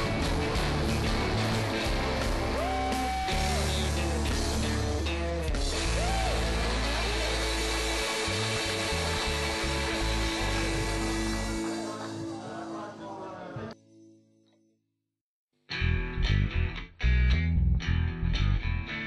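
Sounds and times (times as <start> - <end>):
steady bass: 0.0 - 12.0, 15.7 - 19.0
electric guitar lead bending pitch: 0.0 - 12.4, 15.7 - 19.0
rock music: 0.0 - 12.4.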